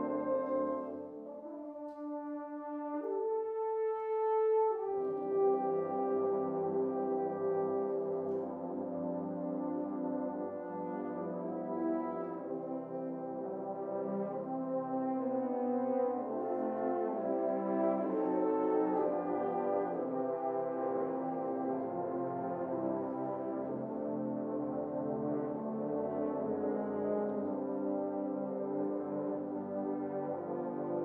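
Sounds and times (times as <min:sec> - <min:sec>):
french horns playing chords: 0:00.0 - 0:31.0.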